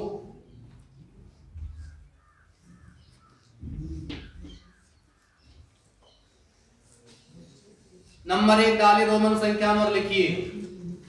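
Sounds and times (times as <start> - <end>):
faint bird caws: 1.6 - 6.2.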